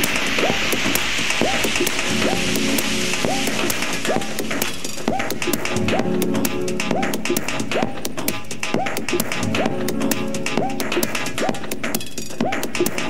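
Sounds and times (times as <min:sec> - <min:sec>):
techno music: 0:00.0 - 0:13.0
ticking hi-hats: 0:00.0 - 0:13.0.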